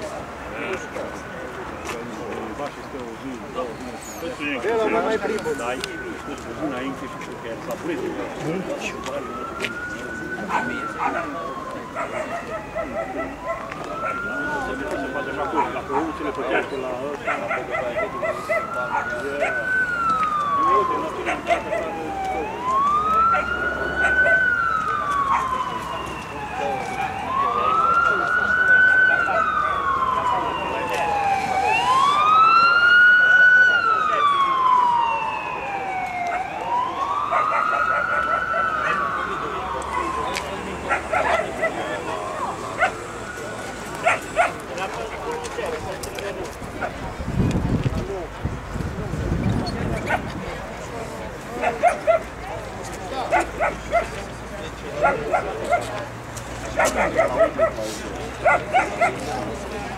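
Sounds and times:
crowd chatter: 0.0 - 59.9
many people talking: 0.0 - 59.9
siren wailing: 4.2 - 46.1
dog barking: 12.0 - 14.2, 17.2 - 19.6, 40.9 - 41.8, 42.8 - 43.0, 44.0 - 44.6, 51.6 - 52.3, 53.3 - 54.2, 55.0 - 55.9, 56.8 - 57.8, 58.4 - 59.2
dog yipping: 44.0 - 44.6, 51.6 - 52.2, 58.4 - 59.2.

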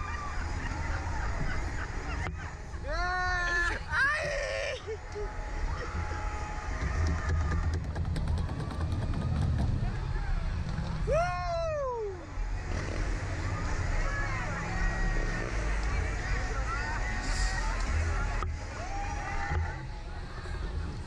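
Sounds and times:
people laughing: 0.0 - 6.2
steady low rumble: 3.7 - 21.0
people talking: 9.2 - 18.7.

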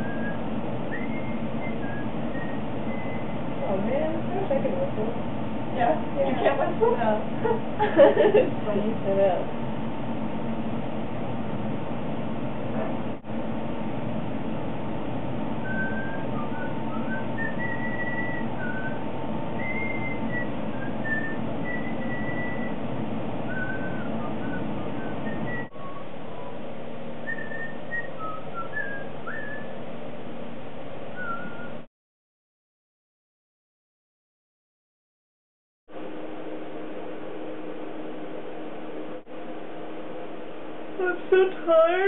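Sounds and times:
person whistling: 0.0 - 3.4, 15.6 - 19.0, 19.6 - 22.8, 23.5 - 26.1, 27.2 - 29.8, 31.2 - 31.8
background hiss and hum: 0.0 - 31.9, 35.9 - 42.0.

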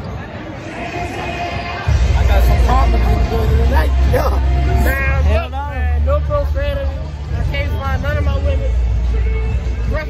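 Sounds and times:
crowd chatter: 0.0 - 10.0
people talking close: 0.0 - 10.0.

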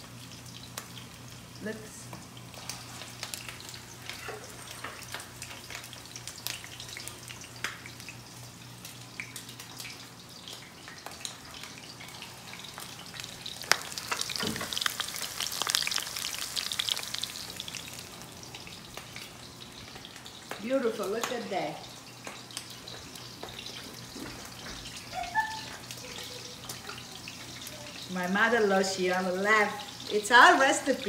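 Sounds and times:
patties frying in hot oil: 0.0 - 31.0.

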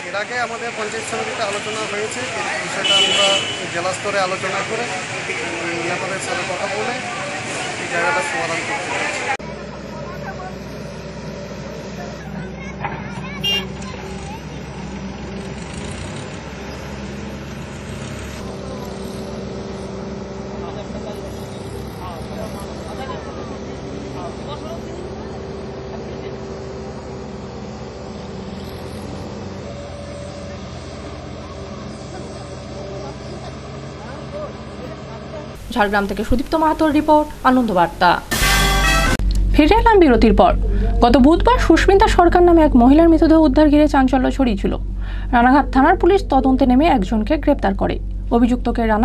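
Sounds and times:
engine hum: 0.0 - 49.0
faint voices: 4.6 - 15.6
short sharp sound: 38.3 - 39.5.

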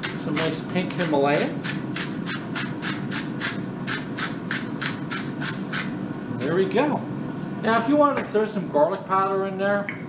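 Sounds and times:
salt grinder rasping: 0.0 - 6.0.

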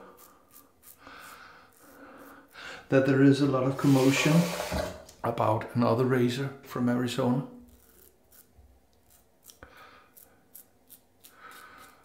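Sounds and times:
razor scraping stubble: 0.0 - 2.6, 7.6 - 12.0.

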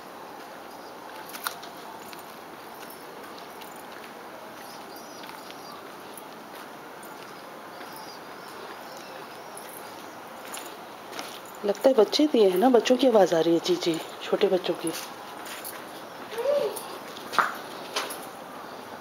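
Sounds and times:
steady background hiss: 0.0 - 19.0
young birds chirping: 4.5 - 11.0.

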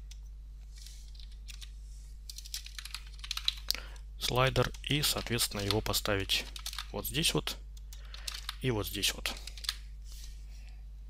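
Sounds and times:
computer keyboard typing: 1.1 - 1.7, 2.3 - 6.9, 7.8 - 8.6, 9.2 - 9.8.

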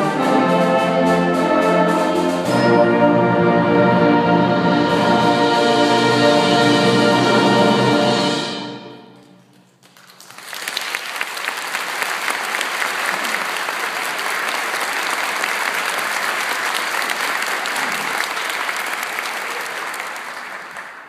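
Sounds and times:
concert band playing: 0.0 - 9.3
audience applause: 9.5 - 21.0.

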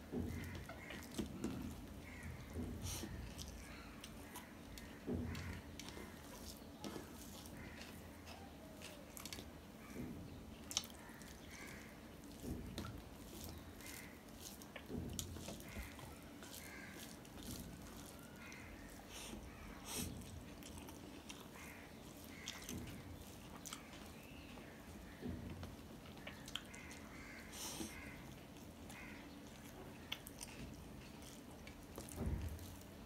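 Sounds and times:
quiet chewing: 0.0 - 33.0
fingers squelching rice: 0.3 - 25.2.

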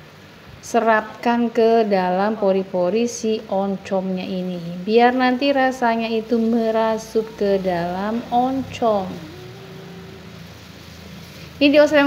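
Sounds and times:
quiet frying sizzle: 0.0 - 12.0.

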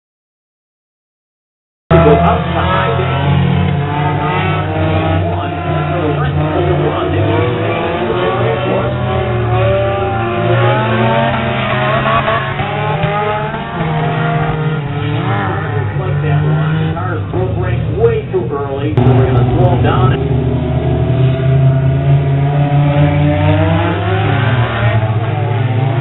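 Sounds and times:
race car engines running hard: 1.9 - 26.0.

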